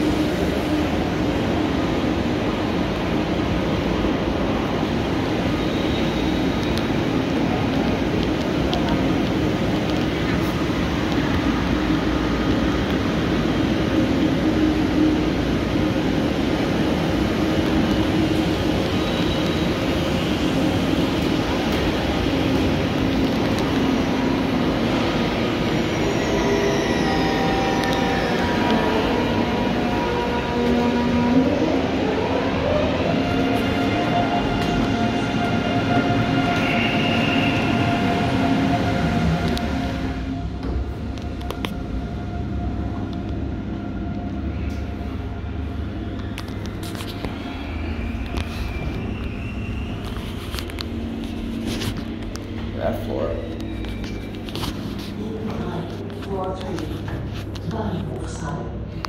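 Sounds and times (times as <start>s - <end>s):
electric train rumble and hum: 0.0s - 59.0s.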